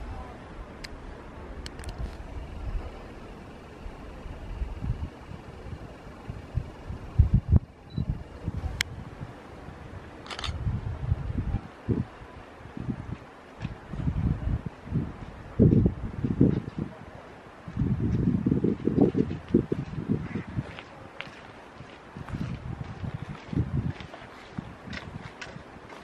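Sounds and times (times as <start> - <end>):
wind rumbling on microphone: 0.0 - 26.0
camera handling noise: 1.7 - 2.2, 10.2 - 10.6.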